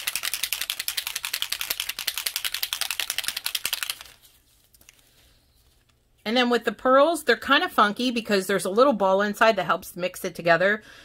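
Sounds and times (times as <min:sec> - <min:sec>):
ball rattling in shaken bottle: 0:00.0 - 0:05.0.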